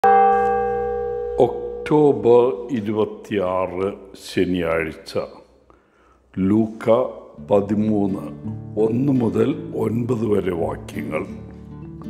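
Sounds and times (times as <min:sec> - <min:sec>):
bell ringing: 0:00.0 - 0:02.3
man speaking: 0:01.4 - 0:05.4, 0:06.4 - 0:11.4.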